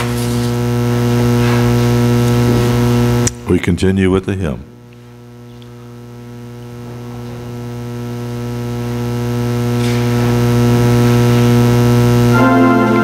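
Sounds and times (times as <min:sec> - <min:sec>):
organ holding low chord: 0:10.3 - 0:13.0.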